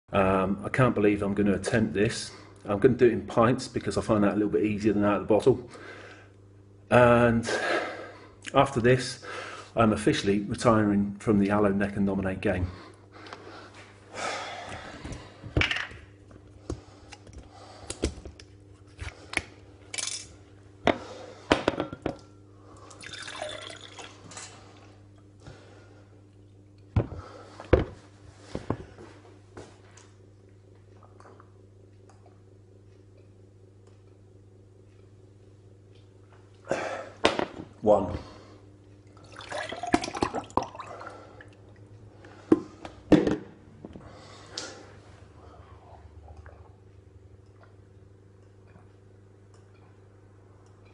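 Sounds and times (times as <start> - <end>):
gel pouring into glass: 22.9 - 24.2, 39.2 - 40.9.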